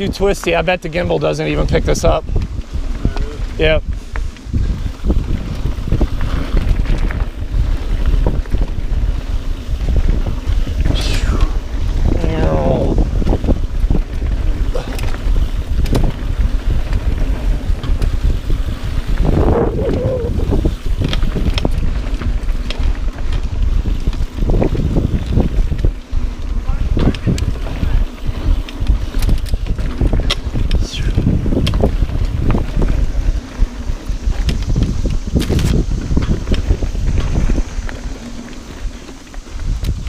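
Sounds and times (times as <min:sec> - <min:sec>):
bike rattling and knocking: 0:00.0 - 0:11.0, 0:11.6 - 0:40.0
bike tyres on dirt: 0:00.0 - 0:40.0
wind rush on microphone: 0:00.0 - 0:40.0.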